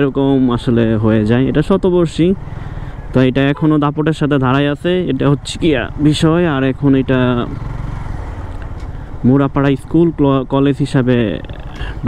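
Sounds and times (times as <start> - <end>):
man speaking: 0.0 - 2.4, 3.1 - 7.6, 9.2 - 12.0
motorcycle engine running: 0.0 - 12.0.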